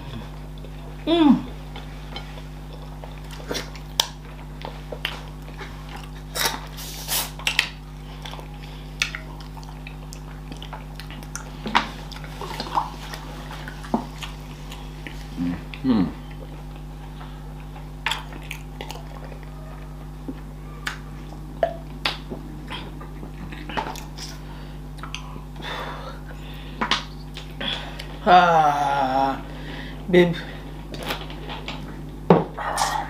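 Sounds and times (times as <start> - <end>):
steady low hum: 0.0 - 33.0
person humming: 1.0 - 1.5, 15.4 - 16.3, 27.6 - 30.5, 32.5 - 33.0
wet chewing and finger-licking: 1.7 - 25.6, 26.8 - 28.2.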